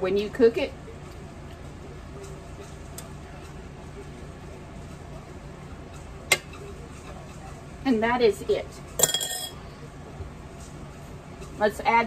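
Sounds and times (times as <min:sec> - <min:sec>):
spoon clinking ceramic bowl: 0:09.0 - 0:09.6.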